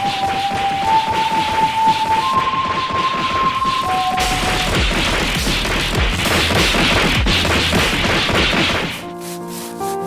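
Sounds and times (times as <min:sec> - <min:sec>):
cartoon fight whacks and crashes: 0:00.0 - 0:09.1
background music: 0:00.0 - 0:10.0.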